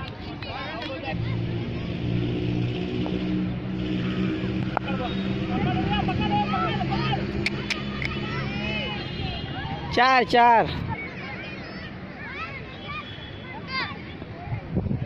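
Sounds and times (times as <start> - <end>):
children's voices and calls: 0.0 - 15.0
low engine hum: 1.1 - 9.1.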